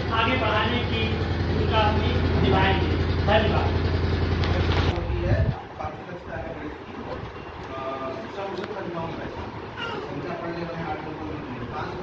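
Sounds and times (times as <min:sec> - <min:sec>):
background murmur: 0:04.4 - 0:12.0
faint echoing speech: 0:04.5 - 0:12.0.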